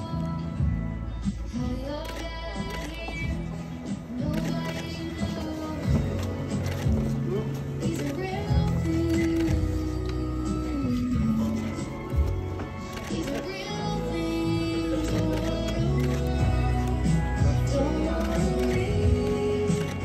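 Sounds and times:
slow music with held chords: 0:00.0 - 0:20.0.

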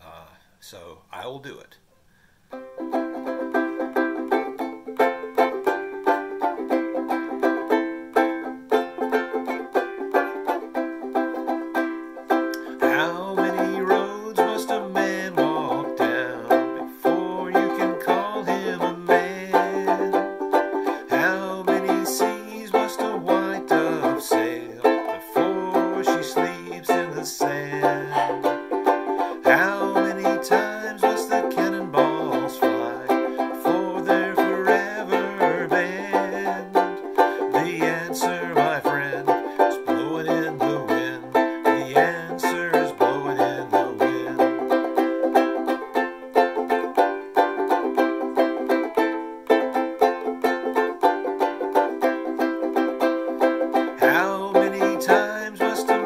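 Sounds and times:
banjo ukulele strumming: 0:02.5 - 0:56.0
man singing low: 0:12.8 - 0:20.2, 0:21.0 - 0:28.5, 0:29.3 - 0:44.6, 0:54.0 - 0:56.0.

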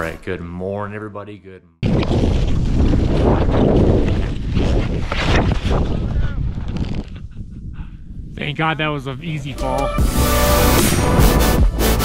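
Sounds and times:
wind on camera microphone: 0:01.8 - 0:08.6.

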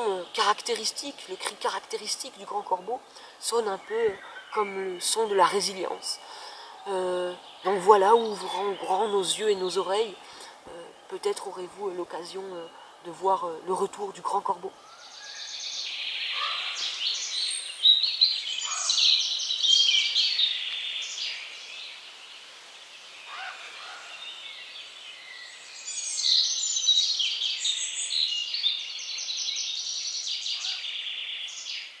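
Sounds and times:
faint lower bird calls: 0:00.0 - 0:32.0
songbirds chirping and trilling: 0:00.0 - 0:32.0.

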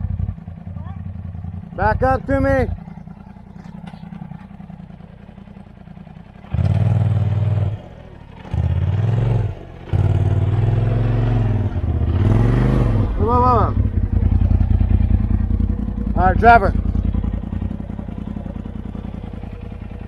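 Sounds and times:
utility vehicle engine revving: 0:00.0 - 0:20.0.

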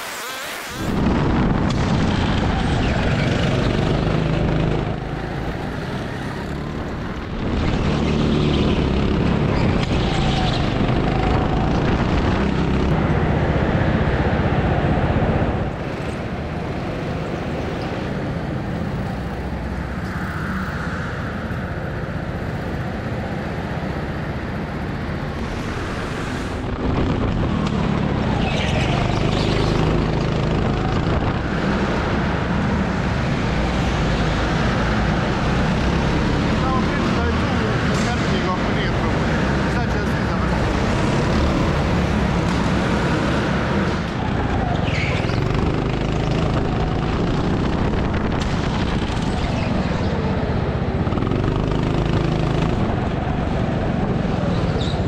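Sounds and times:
go-kart engines running: 0:00.0 - 0:55.0
people talking: 0:36.5 - 0:40.8.

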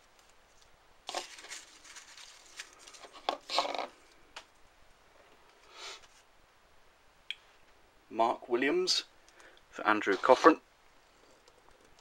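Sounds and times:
paper rustling and crinkling: 0:00.2 - 0:04.0.

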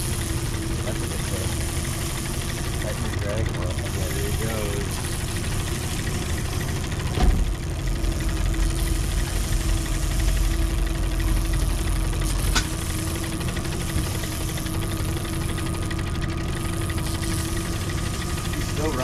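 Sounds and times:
outboard motor idling: 0:00.0 - 0:19.0
sharp click: 0:12.4 - 0:12.8.

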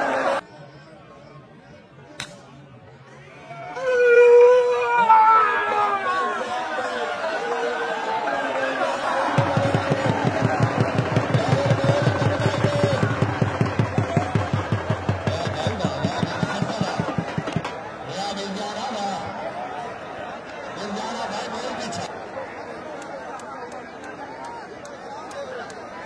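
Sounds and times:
crowd shouting and chattering: 0:00.0 - 0:26.0
dhol drum beating: 0:09.3 - 0:17.9.

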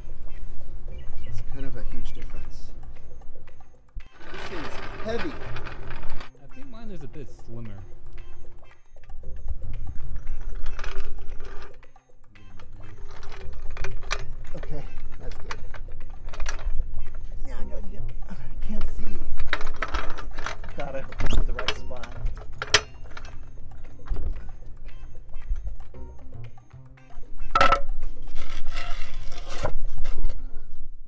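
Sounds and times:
music playing: 0:00.0 - 0:30.5
floor jack rolling on concrete: 0:04.0 - 0:06.3, 0:18.6 - 0:25.9, 0:27.6 - 0:30.4
casters clicking and rattling: 0:04.0 - 0:06.4, 0:09.8 - 0:17.4, 0:18.1 - 0:26.0.

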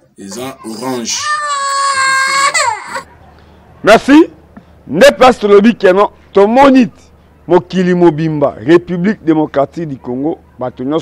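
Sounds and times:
toddler crying: 0:00.2 - 0:03.1.

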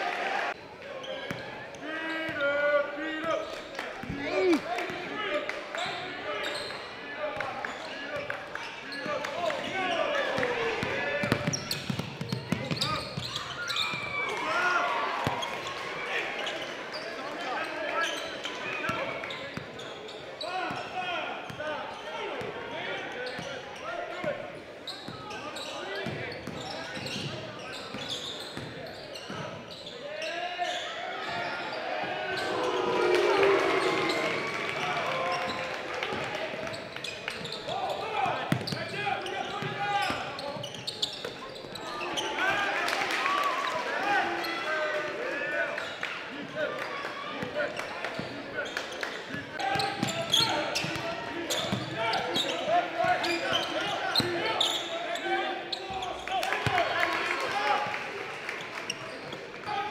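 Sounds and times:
echoing voices: 0:31.6 - 0:36.8.

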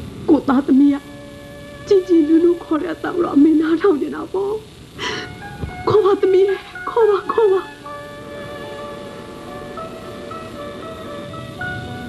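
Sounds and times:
background music with held tones: 0:00.0 - 0:12.0
sobbing intake of breath: 0:05.0 - 0:05.4.

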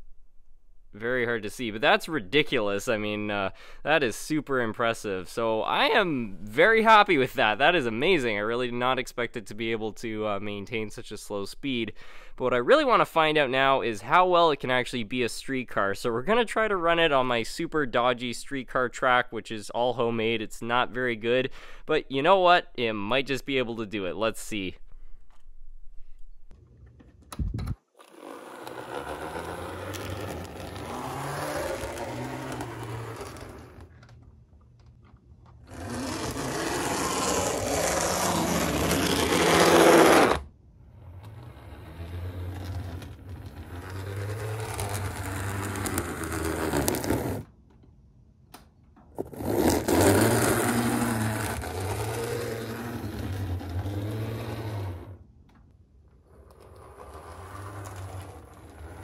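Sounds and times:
model streetcar motor whirring: 0:28.0 - 0:33.9, 0:35.7 - 0:47.4, 0:49.7 - 0:55.2, 0:56.3 - 0:59.0
wheels scraping and rattling on rails: 0:28.1 - 0:34.0, 0:35.7 - 0:47.5, 0:49.2 - 0:55.2, 0:56.2 - 0:59.0.

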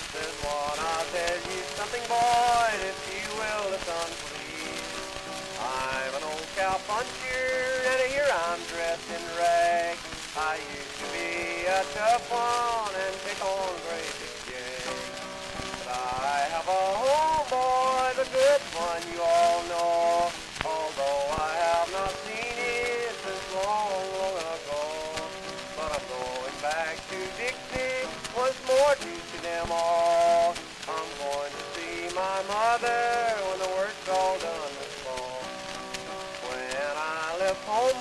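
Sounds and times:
record crackle and hiss: 0:00.0 - 0:38.0.

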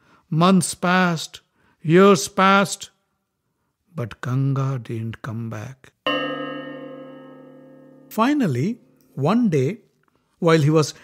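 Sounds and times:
metal chime ringing: 0:06.1 - 0:09.1.

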